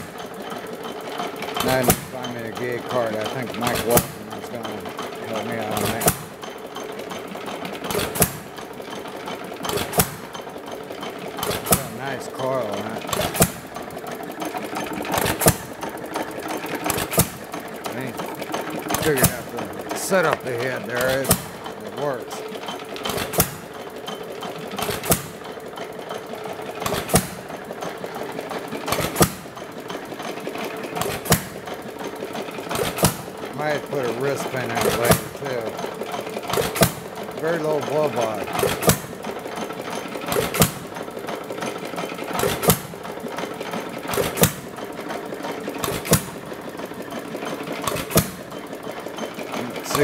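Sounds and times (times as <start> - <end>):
hit-and-miss engine firing: 0.0 - 50.0
light mechanical clatter: 0.0 - 50.0.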